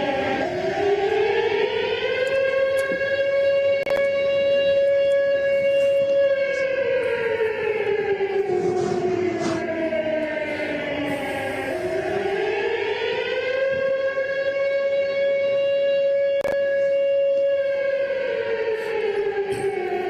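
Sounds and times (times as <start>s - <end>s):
siren wailing: 0.0s - 20.0s.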